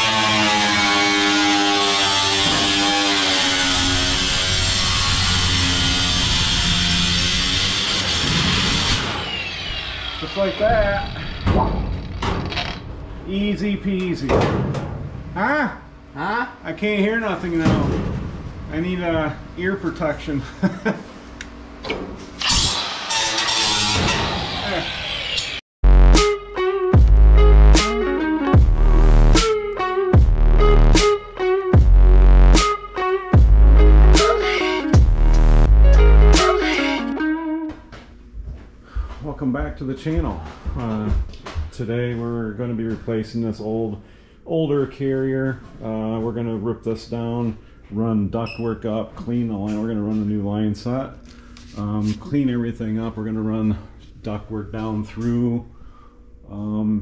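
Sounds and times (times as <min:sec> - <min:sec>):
angle grinder cutting sheet metal: 0:00.0 - 0:12.2, 0:22.4 - 0:25.6, 0:33.9 - 0:37.2.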